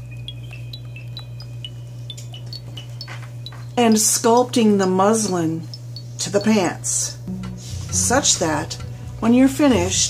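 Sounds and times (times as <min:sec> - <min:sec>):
high ringing chime-like notes: 0:00.0 - 0:04.4
steady low hum: 0:00.0 - 0:10.0.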